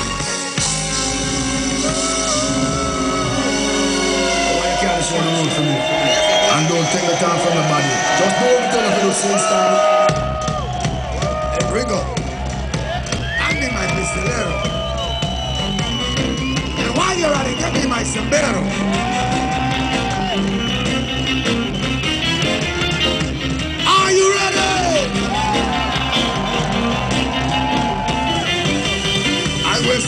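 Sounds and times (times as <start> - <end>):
live reggae band: 0.0 - 6.6
electric bass: 0.0 - 7.8, 10.1 - 30.0
reggae band playing: 0.0 - 8.4, 9.1 - 30.0
drum kit: 0.0 - 9.2, 9.9 - 30.0.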